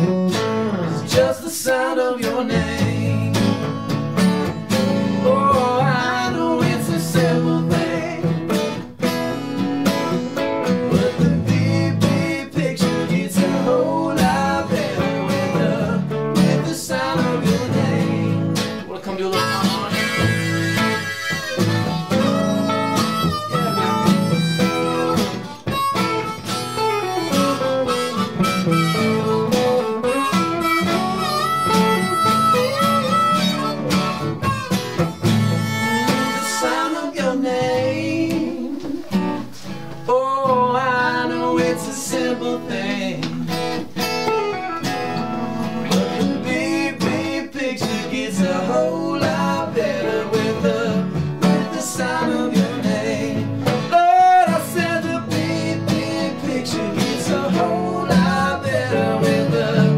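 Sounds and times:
electric guitar: 0.0 - 59.9
strummed acoustic guitar: 0.0 - 59.9
harmonica playing lead: 19.2 - 37.6, 43.6 - 46.4.

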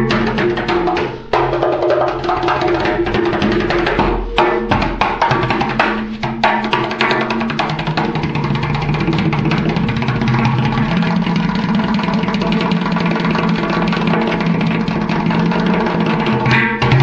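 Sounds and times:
fast hand drum roll: 0.0 - 17.0.

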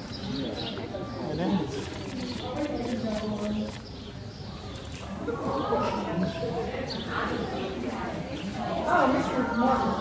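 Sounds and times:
people talking indistinctly: 0.1 - 10.0.

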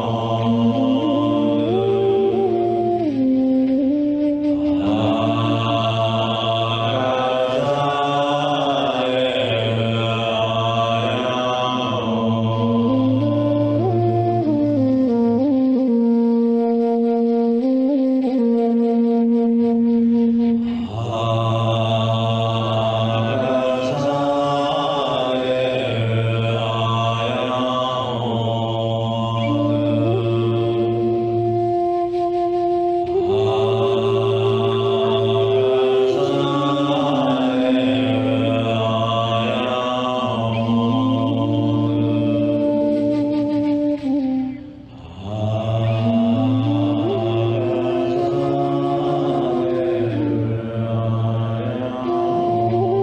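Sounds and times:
man chanting a mantra: 0.0 - 3.3, 4.6 - 14.4, 20.7 - 31.7, 33.0 - 43.0, 45.0 - 53.0.

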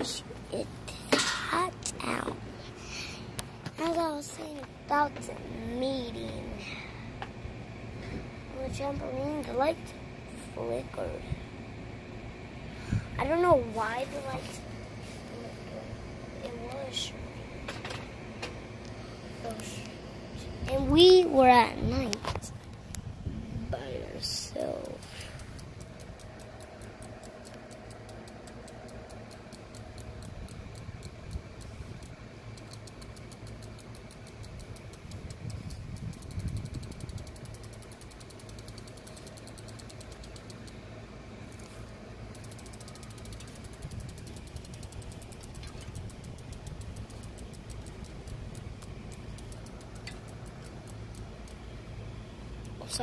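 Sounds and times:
low mechanical hum: 0.0 - 53.0
fast even ticking: 23.9 - 40.9, 41.9 - 53.0.

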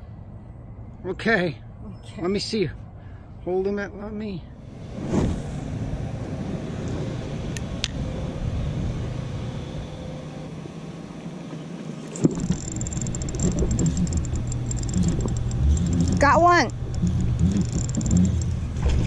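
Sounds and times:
fishing reel whirring: 12.1 - 18.6
wind rumbling on microphone: 12.2 - 19.0.

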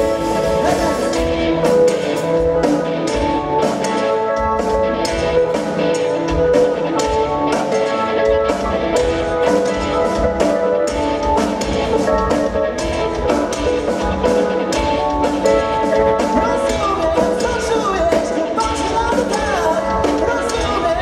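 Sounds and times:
bass guitar: 0.0 - 21.0
drum kit: 0.0 - 21.0
electric guitar: 0.0 - 21.0.

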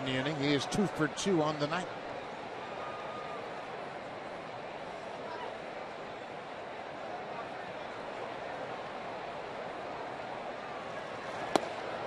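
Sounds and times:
ball smacking into mitt: 11.5 - 11.8.

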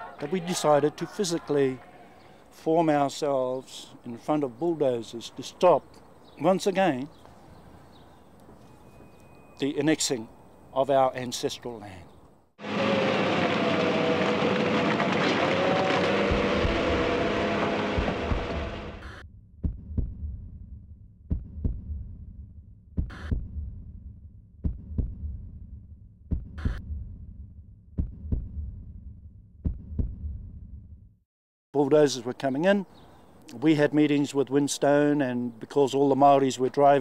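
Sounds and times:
faint held tones: 8.6 - 10.8
loud dense rushing noise: 12.6 - 19.0
low throbbing hum: 12.6 - 30.8
heartbeat thuds: 18.0 - 20.5, 21.3 - 22.2, 23.0 - 23.8, 24.6 - 25.5, 26.3 - 27.2, 28.0 - 29.0, 29.6 - 30.6.

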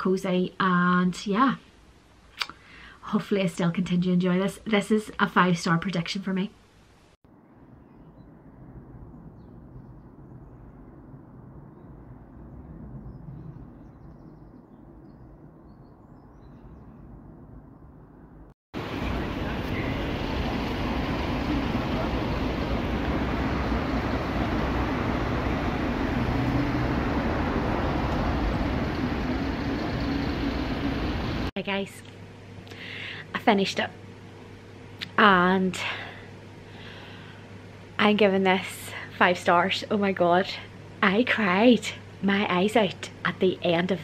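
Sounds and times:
muffled surrounding hum: 8.1 - 44.0
passing traffic: 18.8 - 31.5.

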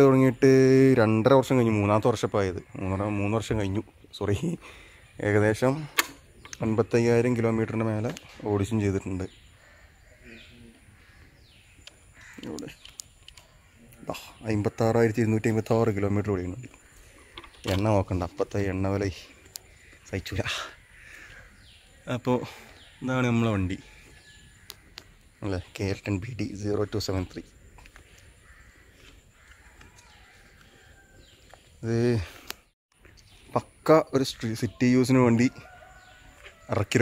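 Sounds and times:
distant bird calling: 0.0 - 37.0
faint outdoor background noise: 0.0 - 37.0.

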